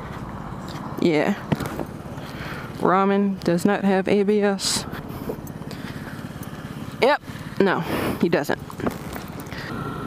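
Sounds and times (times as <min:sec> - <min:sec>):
road and wind noise: 0:00.0 - 0:10.0
scooter engine running: 0:00.0 - 0:10.0.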